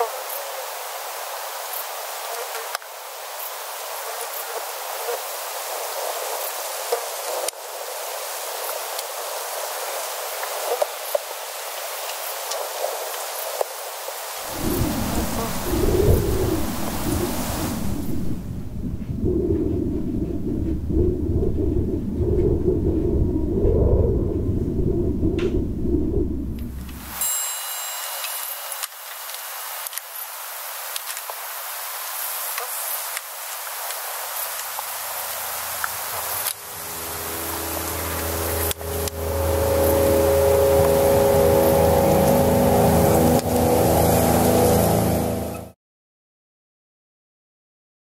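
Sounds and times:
steady hiss: 0.0 - 19.0, 26.6 - 45.4
deep rumble: 14.4 - 27.2, 36.2 - 45.7.

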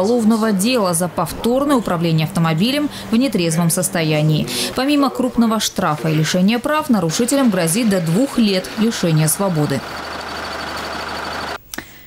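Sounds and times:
vehicle engine idling: 0.0 - 5.1, 7.0 - 11.6.

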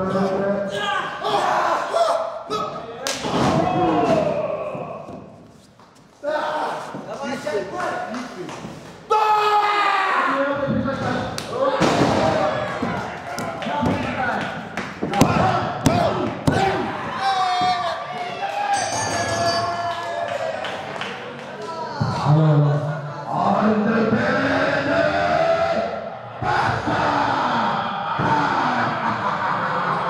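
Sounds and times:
people shouting: 0.7 - 5.1, 9.1 - 10.5, 15.0 - 20.7, 24.2 - 30.0.

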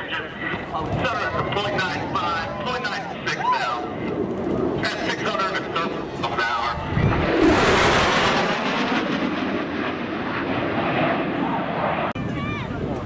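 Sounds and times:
jet engines roaring past: 0.0 - 13.0.

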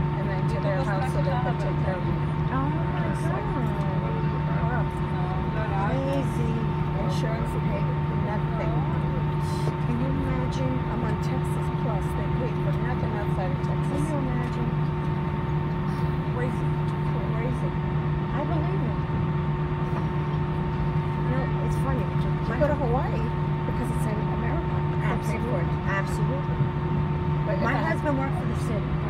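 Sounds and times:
airplane cabin drone: 0.0 - 29.0
faint passenger chatter: 0.0 - 29.0.

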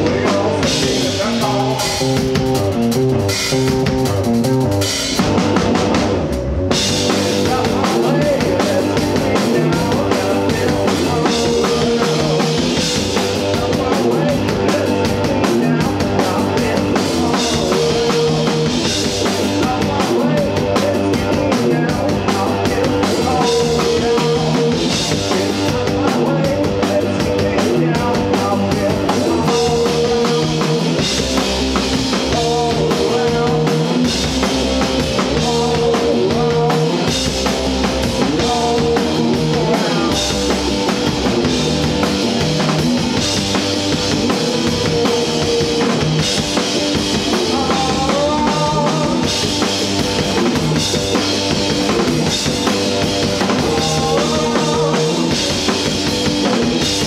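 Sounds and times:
drum kit steady beat: 0.0 - 57.0
electric guitars: 0.0 - 57.0.

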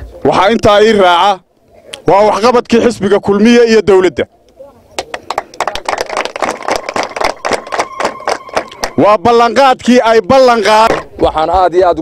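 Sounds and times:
audience applauding: 5.0 - 9.2.

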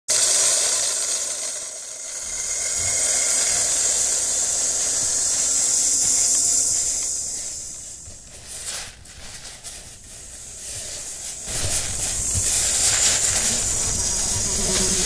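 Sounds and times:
loud static hiss: 0.1 - 15.0.

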